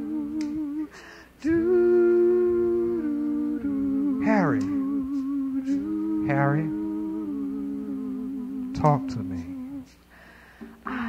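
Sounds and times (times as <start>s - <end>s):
voices humming in harmony: 0.0s - 11.0s.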